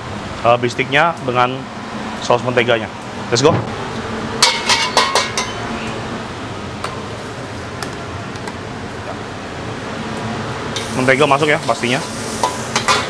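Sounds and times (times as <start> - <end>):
ladle clinking against a wok: 4.4 - 5.6
gas burner rushing: 9.6 - 13.0.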